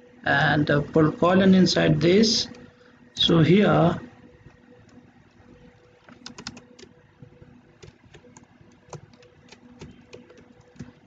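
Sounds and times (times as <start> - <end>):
faint steady hum: 0.0 - 11.0
computer keyboard keystrokes: 6.0 - 6.9, 7.8 - 11.0.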